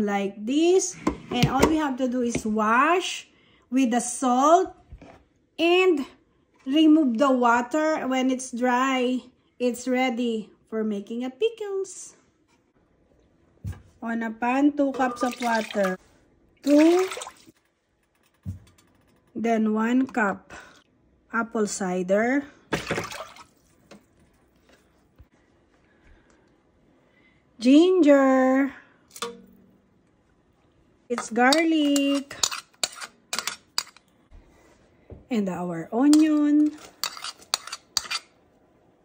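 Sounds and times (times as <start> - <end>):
water splashing into a saucepan: 15.0 - 16.0, 16.6 - 17.6, 22.7 - 24.0.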